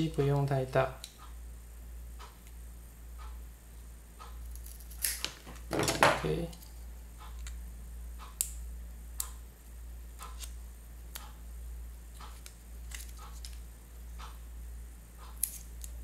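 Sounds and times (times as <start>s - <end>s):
scissors snipping tape: 15.3s - 16.0s.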